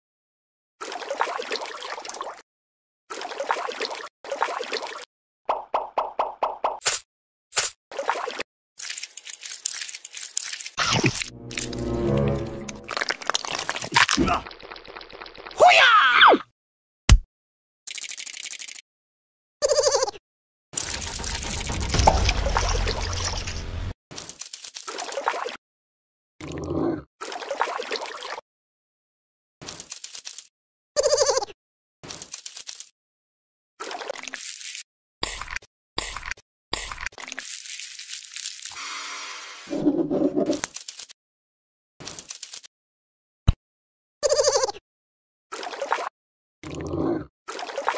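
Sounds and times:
water pouring and sloshing: 0:00.8 - 0:02.4, 0:03.1 - 0:05.1, 0:07.9 - 0:15.6, 0:20.8 - 0:25.6, 0:27.2 - 0:28.4, 0:33.8 - 0:34.9, 0:37.0 - 0:38.8, 0:45.5 - 0:46.8, 0:47.5 - 0:47.9
crackly splashing: 0:08.0 - 0:11.2, 0:12.9 - 0:15.6, 0:20.8 - 0:25.5
mud plops: 0:20.8 - 0:23.9.

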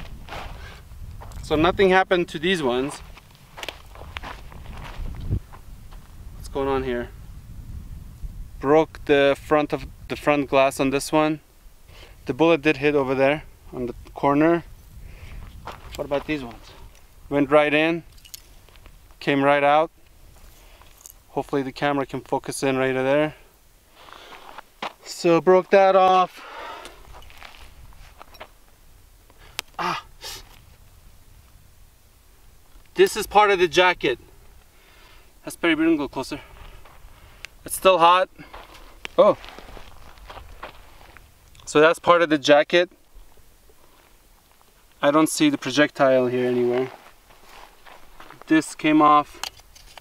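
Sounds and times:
footsteps on dry dirt: 0:00.0 - 0:06.8, 0:15.2 - 0:17.4, 0:20.1 - 0:22.3, 0:23.9 - 0:28.7, 0:36.3 - 0:41.5, 0:43.1 - 0:49.4
man's short vocal sound: 0:29.7 - 0:30.4.

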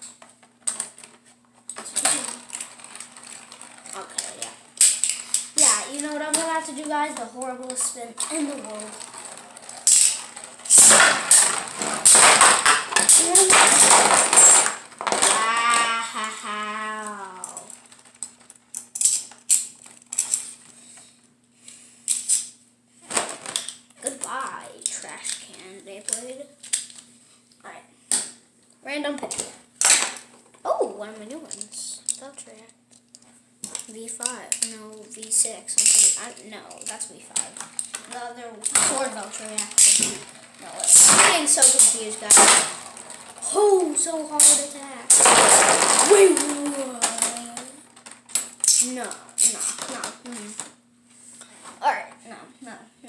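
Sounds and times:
child talking: 0:01.8 - 0:02.5, 0:03.9 - 0:04.6, 0:05.5 - 0:09.1, 0:13.0 - 0:17.8, 0:24.0 - 0:26.6, 0:27.6 - 0:27.9, 0:28.8 - 0:29.6, 0:30.6 - 0:32.8, 0:33.7 - 0:42.7, 0:43.4 - 0:47.9, 0:48.7 - 0:50.7, 0:51.8 - 0:53.0
spinning tops clattering: 0:01.8 - 0:20.6, 0:38.6 - 0:50.1.

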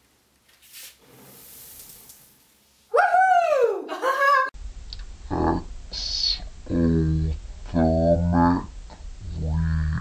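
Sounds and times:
woman shouting: 0:02.9 - 0:04.5.

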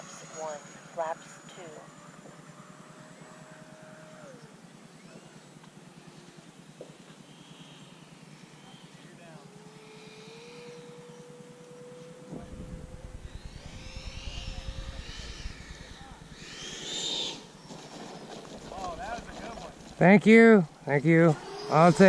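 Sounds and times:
rc jet electric fan whine: 0:00.0 - 0:22.0
low rumble: 0:12.3 - 0:22.0.

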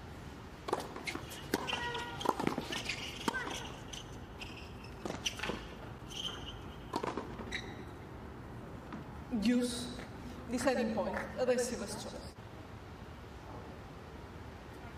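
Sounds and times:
racket striking tennis ball: 0:00.6 - 0:07.5
ball bouncing on hard court: 0:00.7 - 0:07.8
sneakers squeaking: 0:00.7 - 0:08.2.

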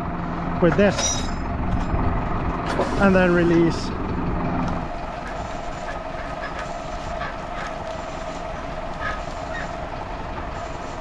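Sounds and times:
hydraulic winch humming: 0:00.0 - 0:11.0
tractor engine running: 0:00.0 - 0:11.0.

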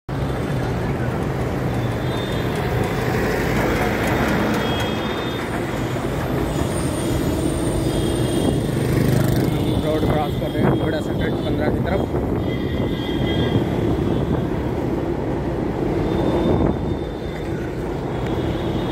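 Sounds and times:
road traffic: 0:00.1 - 0:18.9.

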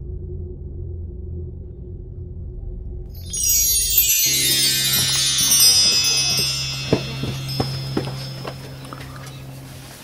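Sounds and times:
steady low hum: 0:00.0 - 0:10.0
shimmering chime tone: 0:03.1 - 0:09.7.

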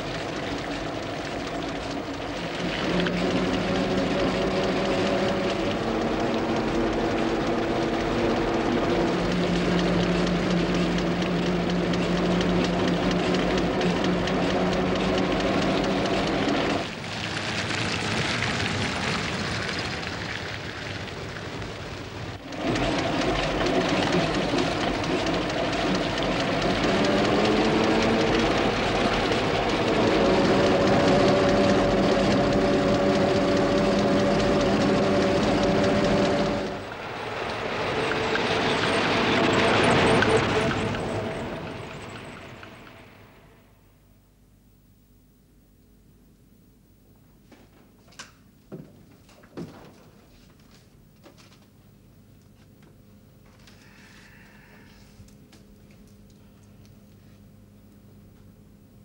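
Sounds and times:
car engine running: 0:00.0 - 0:16.9, 0:17.6 - 0:43.6.

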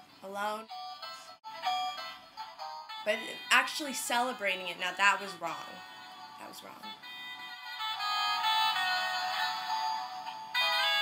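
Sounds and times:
electronic melody from small speaker: 0:00.6 - 0:11.0.

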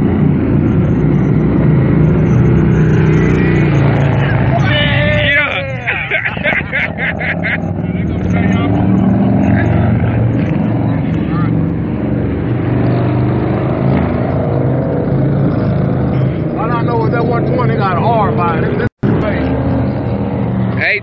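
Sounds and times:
motorcycle engines running: 0:00.0 - 0:21.0.

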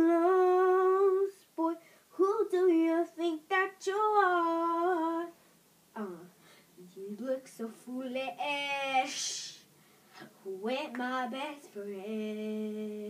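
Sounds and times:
person singing unaccompanied: 0:00.0 - 0:09.6, 0:10.2 - 0:13.0.

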